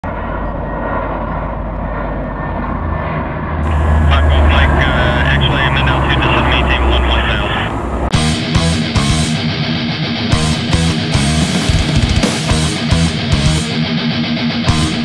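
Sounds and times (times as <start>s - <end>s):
aircraft engine drone: 0.0s - 15.0s
indistinct voice talking: 3.6s - 8.0s.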